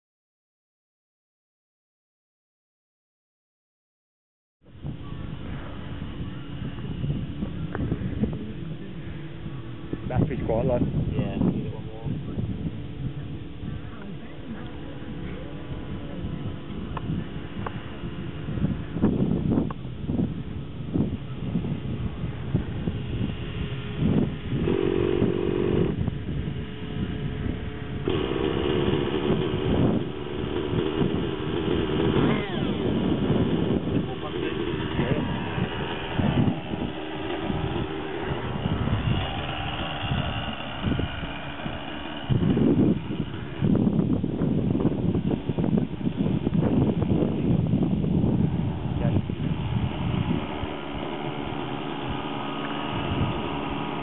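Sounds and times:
model engine buzzing idle: 4.8s - 54.0s
electric starter whirring: 12.6s - 54.0s.

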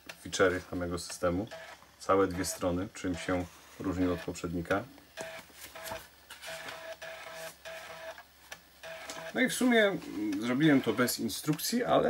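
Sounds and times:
floppy disk drive buzzing: 0.0s - 12.0s.

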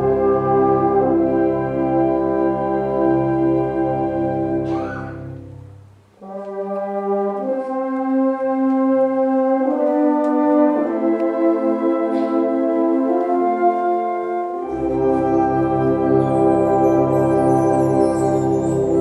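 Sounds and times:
concert band brass chords: 0.0s - 19.0s.

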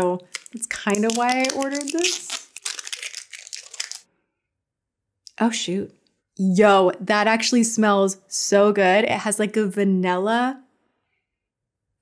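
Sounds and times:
packaging crinkling: 0.2s - 4.1s.

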